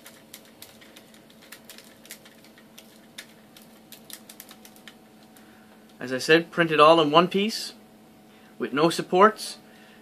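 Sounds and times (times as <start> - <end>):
small plastic clicks and rattles: 0.0 - 5.3
faint steady hum: 0.0 - 10.0.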